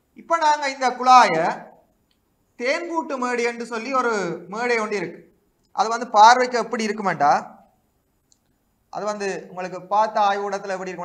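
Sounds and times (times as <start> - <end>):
man speaking: 0.2 - 1.8, 2.6 - 5.2, 5.8 - 7.6, 9.0 - 11.0
faint click: 8.2 - 8.6.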